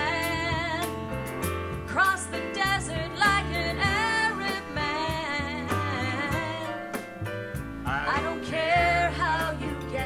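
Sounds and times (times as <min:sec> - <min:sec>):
woman singing with vibrato: 0:00.0 - 0:01.0, 0:01.9 - 0:06.9, 0:08.0 - 0:10.0
drums: 0:00.0 - 0:10.0
grand piano: 0:00.0 - 0:10.0
upright bass: 0:00.0 - 0:10.0.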